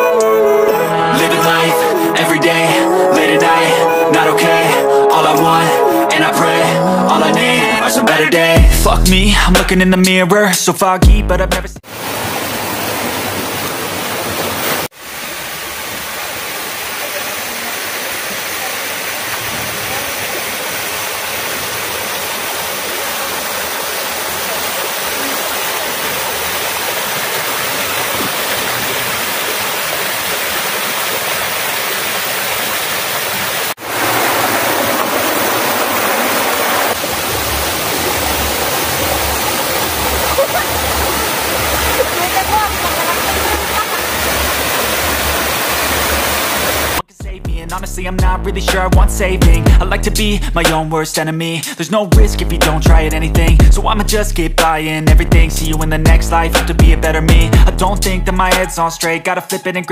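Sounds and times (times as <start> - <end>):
small waterfall cascading: 11.8 - 47.0.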